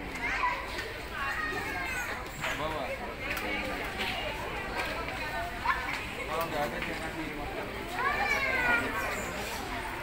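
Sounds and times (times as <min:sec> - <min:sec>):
people talking outdoors: 0:00.0 - 0:10.0.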